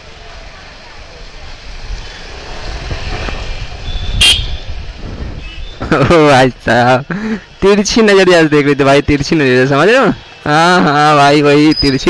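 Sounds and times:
motorcycle engine: 0:00.0 - 0:06.2
wind rumble on microphone: 0:01.5 - 0:06.1
sharp high-pitched toot: 0:04.0 - 0:04.6.

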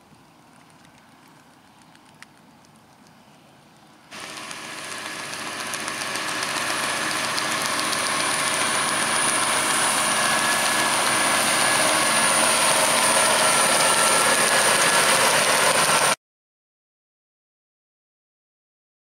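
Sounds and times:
muck spreader beaters: 0:04.1 - 0:16.2
thin high whine: 0:04.1 - 0:16.2
tractor diesel engine under load: 0:04.1 - 0:16.2.

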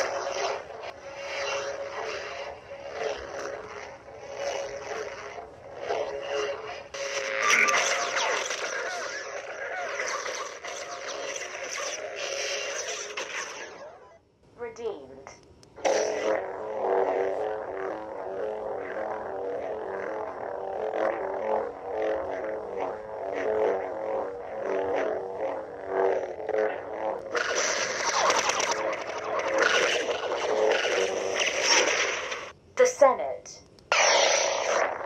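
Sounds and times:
lightsaber retraction: 0:00.0 - 0:14.1, 0:27.3 - 0:32.5, 0:33.9 - 0:35.0
lightsaber humming: 0:00.0 - 0:14.8, 0:15.8 - 0:33.0, 0:33.9 - 0:35.0.

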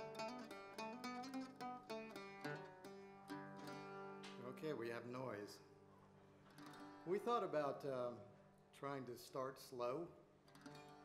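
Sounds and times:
acoustic guitar ringing: 0:00.0 - 0:04.7
person speaking: 0:04.3 - 0:05.7, 0:07.1 - 0:10.2.

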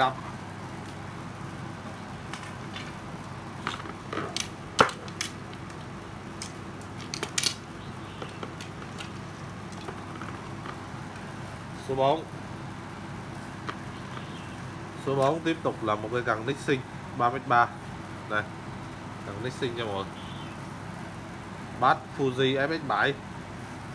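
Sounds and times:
steady room noise: 0:00.0 - 0:23.9
fishing rods clicking and knocking: 0:03.6 - 0:07.6.

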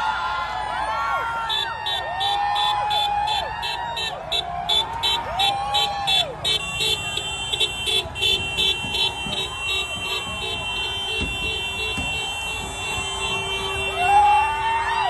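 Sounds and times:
crowd voices: 0:00.0 - 0:15.0
street traffic: 0:00.0 - 0:15.0
vehicle horns beeping: 0:03.6 - 0:14.4.

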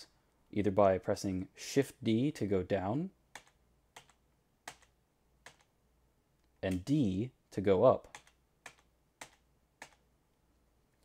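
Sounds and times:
computer keyboard keystrokes: 0:03.3 - 0:05.7, 0:08.1 - 0:10.0.

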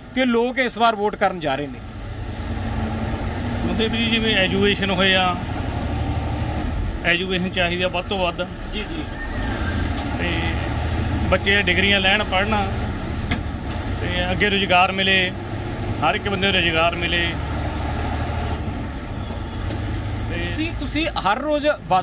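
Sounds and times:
bus engine rumbling: 0:00.0 - 0:22.0
man speaking: 0:03.6 - 0:05.4, 0:07.0 - 0:09.1, 0:10.2 - 0:12.9, 0:14.0 - 0:15.4, 0:16.0 - 0:17.4, 0:20.3 - 0:22.0.

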